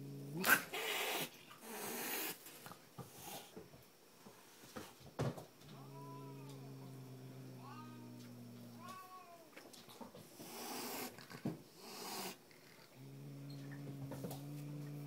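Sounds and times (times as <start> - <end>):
cat hissing: 0.3 - 2.5, 10.4 - 13.5
cat growling and yowling: 5.7 - 9.5.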